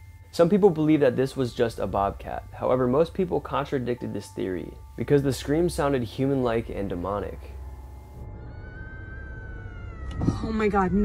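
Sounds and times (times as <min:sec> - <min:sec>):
long high-pitched scream: 0:08.2 - 0:10.7.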